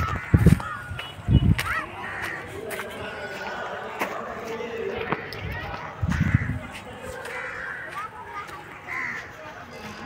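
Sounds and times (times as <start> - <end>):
birds cawing: 0.0 - 2.6, 6.0 - 9.4.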